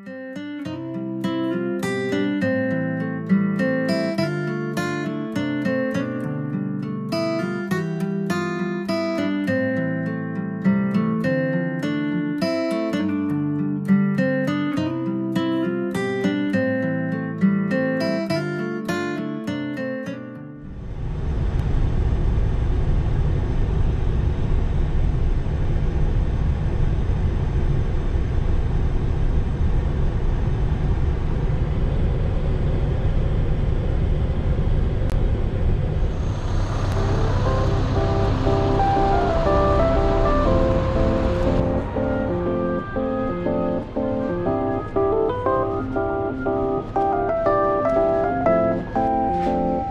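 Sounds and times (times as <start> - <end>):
road noise: 20.6 - 49.9
truck engine rumble: 20.8 - 49.9
melodic music: 36.2 - 49.9.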